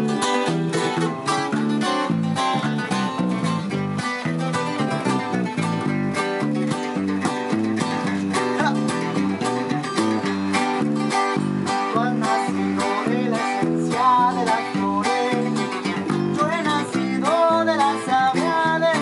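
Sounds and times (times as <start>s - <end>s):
acoustic guitars strumming chords: 0.0s - 19.0s
electric bass line: 0.0s - 19.0s.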